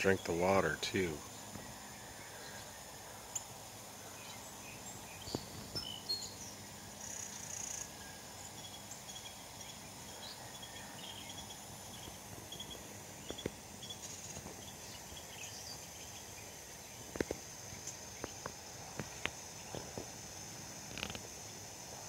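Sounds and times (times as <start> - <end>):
sprinkler watering: 0.0 - 22.0
steady hiss: 0.0 - 22.0.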